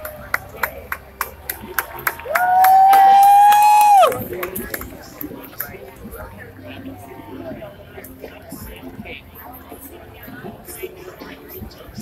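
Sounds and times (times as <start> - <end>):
scattered claps: 0.0 - 5.9
person whooping: 2.3 - 4.2.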